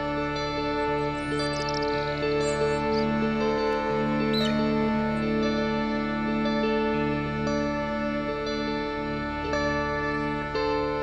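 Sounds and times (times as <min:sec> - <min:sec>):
ambient music with held tones: 0:00.0 - 0:11.0.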